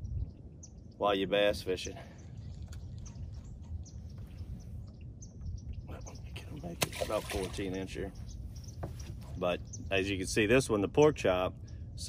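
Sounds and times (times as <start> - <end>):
steady low rumble: 0.0 - 6.9, 7.8 - 12.0
faint bird chirps: 0.0 - 10.4.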